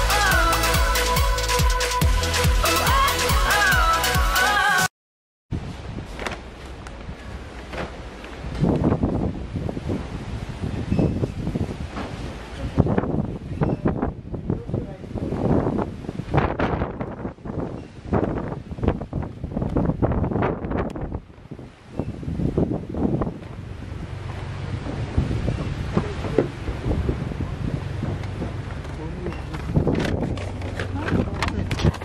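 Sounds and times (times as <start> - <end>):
wind buffeting microphone: 5.5 - 32.0.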